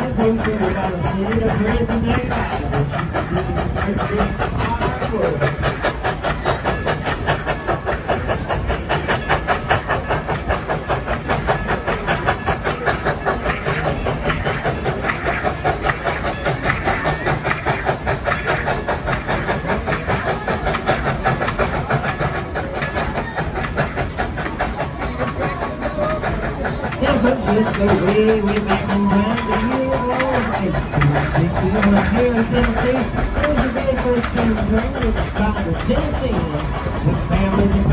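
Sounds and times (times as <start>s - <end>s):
steam locomotive chuffing: 0.0s - 37.9s.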